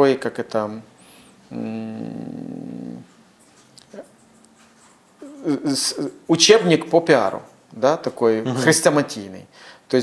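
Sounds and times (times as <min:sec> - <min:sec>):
man's drawn-out uh: 0:01.5 - 0:03.1.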